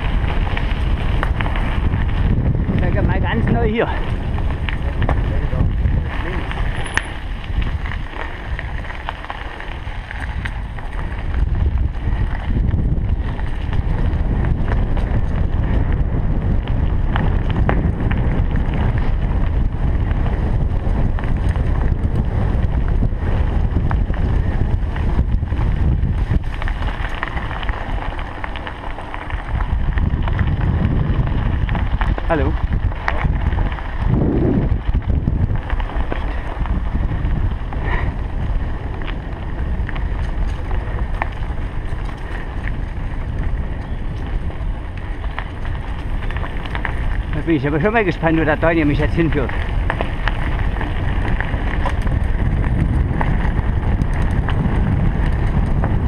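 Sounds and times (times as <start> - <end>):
bicycle knocks and rattles: 0.0 - 56.0
bicycle tyres rolling: 0.0 - 56.0
wind rumbling on microphone: 0.0 - 56.0.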